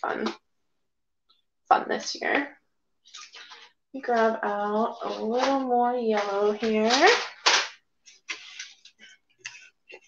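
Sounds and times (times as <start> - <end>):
paint tubes rustling and clicking: 5.0 - 10.0.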